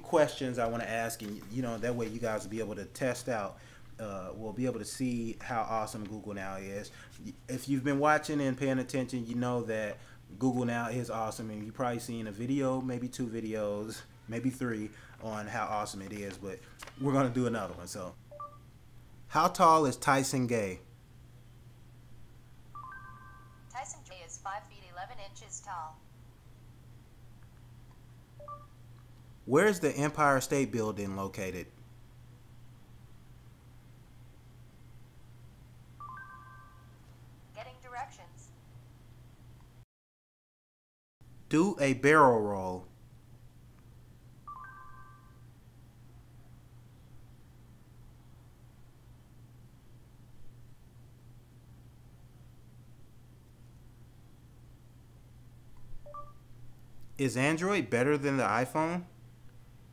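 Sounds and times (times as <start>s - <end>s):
faint steady hum: 0.0s - 39.8s, 41.2s - 59.9s.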